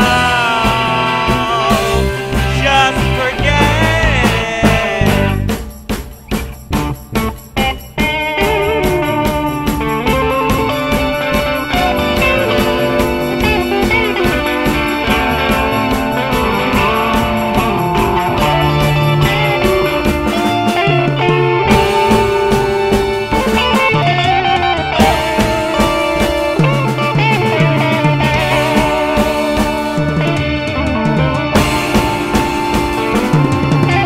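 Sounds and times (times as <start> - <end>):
rock band playing: 0.0 - 34.0.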